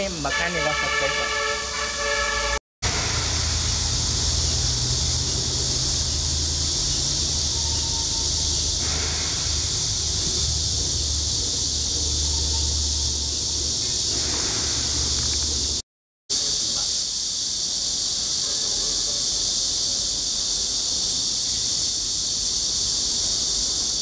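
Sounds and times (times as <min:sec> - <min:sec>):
high hiss: 0:02.8 - 0:24.0.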